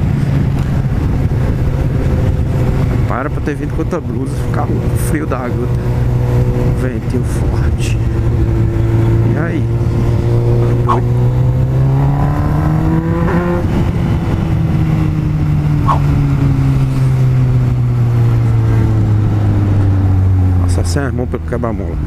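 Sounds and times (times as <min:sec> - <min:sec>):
wind rumbling on microphone: 0:00.0 - 0:20.6
motorcycle engine revving: 0:00.0 - 0:21.1.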